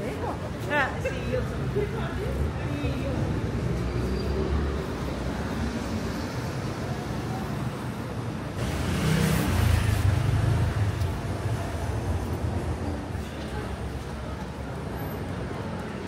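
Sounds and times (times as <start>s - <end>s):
city car traffic rumble: 0.0s - 16.0s
car passing close: 8.6s - 12.5s.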